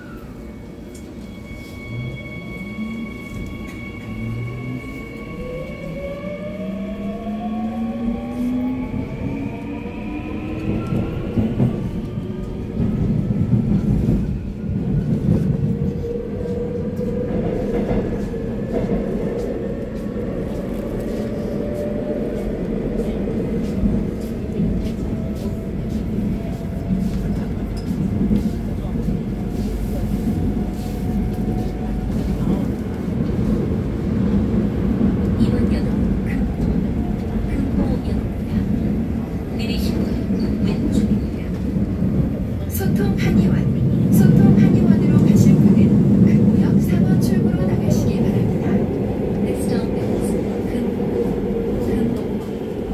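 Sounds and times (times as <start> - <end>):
low train rumble: 0.0 - 52.9.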